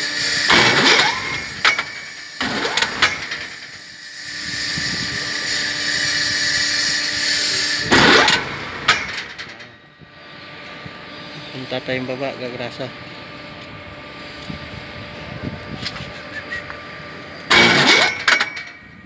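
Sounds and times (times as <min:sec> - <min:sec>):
hoist drive mechanical whine: 0:00.0 - 0:19.0.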